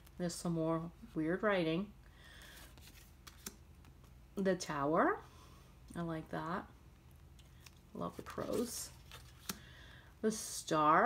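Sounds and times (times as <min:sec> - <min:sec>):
card sliding with light rustling: 0:02.3 - 0:04.2, 0:07.4 - 0:09.7.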